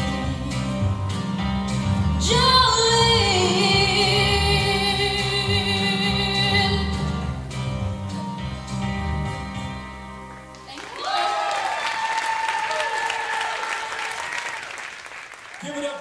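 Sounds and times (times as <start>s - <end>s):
audience applause and cheering: 10.5s - 16.0s.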